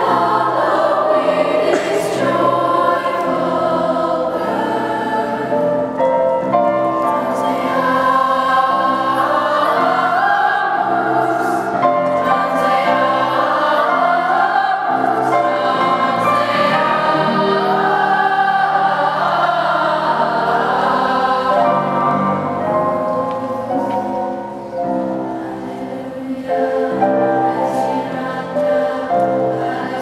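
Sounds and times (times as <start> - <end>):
youth choir singing: 0.0 - 30.0.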